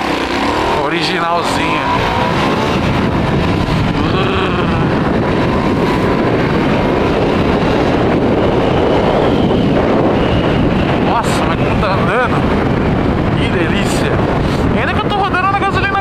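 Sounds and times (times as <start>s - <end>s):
motorcycle engine at speed: 0.0s - 15.2s
wind buffeting microphone: 0.0s - 16.0s.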